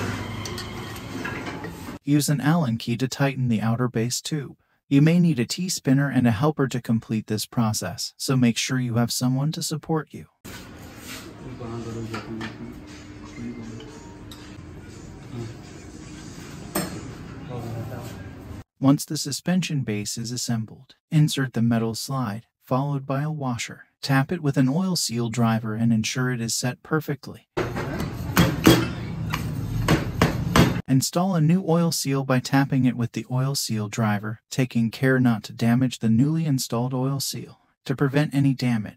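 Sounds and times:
men talking: 0:11.3 - 0:14.6, 0:17.4 - 0:22.3.

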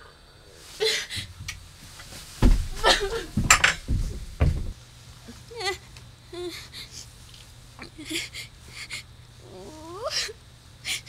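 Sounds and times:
heavy thumps on wood: 0:01.2 - 0:04.8.

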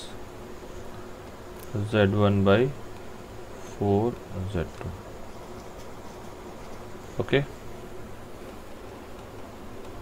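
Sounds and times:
low buzzing hum: 0:00.0 - 0:10.0.

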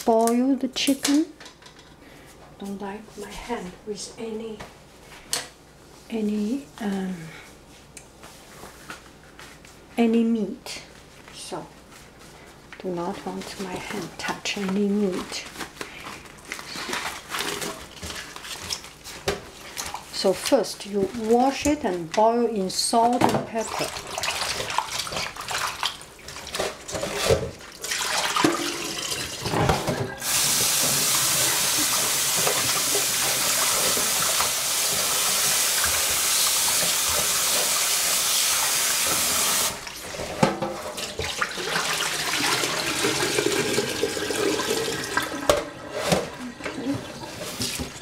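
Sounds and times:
tap water running into pot: 0:26.6 - 0:39.8, 0:41.0 - 0:47.9.

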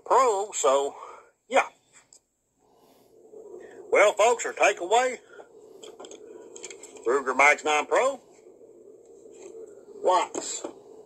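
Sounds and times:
man speaking: 0:03.9 - 0:05.2, 0:07.0 - 0:08.3, 0:10.0 - 0:10.7.

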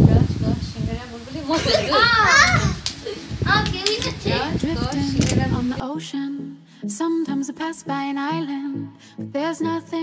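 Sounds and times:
children calling out while playing: 0:01.5 - 0:04.6.

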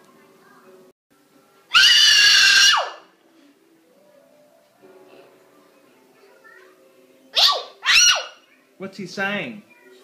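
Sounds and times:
child squealing high-pitched: 0:01.7 - 0:03.0, 0:07.4 - 0:08.4.

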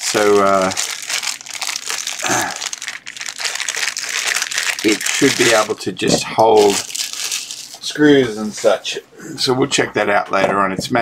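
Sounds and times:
plastic bag crinkling: 0:00.0 - 0:08.8.

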